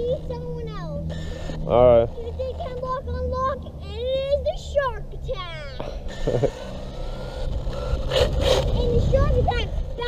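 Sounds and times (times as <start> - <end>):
child making wordless sounds: 0.0 - 1.1, 2.1 - 6.0, 8.5 - 10.0
low background rumble: 0.0 - 10.0.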